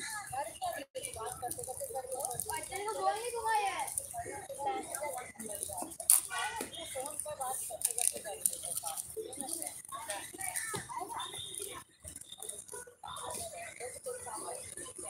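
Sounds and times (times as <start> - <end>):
people talking: 0.0 - 15.0.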